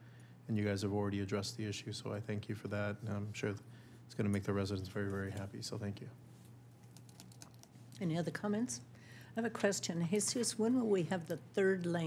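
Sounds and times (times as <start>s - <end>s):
steady low hum: 0.0s - 12.0s
computer keyboard typing: 6.8s - 7.8s.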